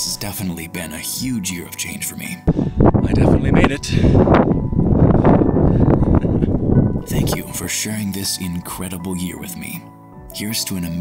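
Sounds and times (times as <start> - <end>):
wind buffeting microphone: 2.5 - 7.7.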